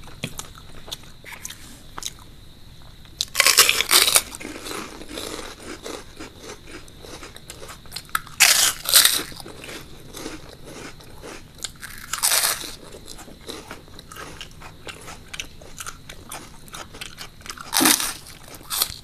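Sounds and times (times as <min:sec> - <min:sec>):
crunchy bites into snacks: 0:02.9 - 0:19.0
chewing: 0:03.2 - 0:19.0.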